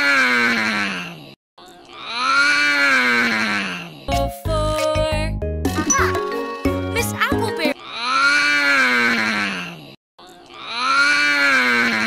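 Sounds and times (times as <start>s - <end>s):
children's song music: 4.1s - 7.8s.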